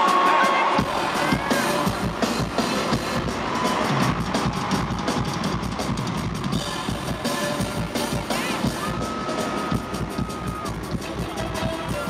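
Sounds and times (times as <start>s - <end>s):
crowd cheering: 0.0s - 12.0s
live band music: 0.0s - 12.0s.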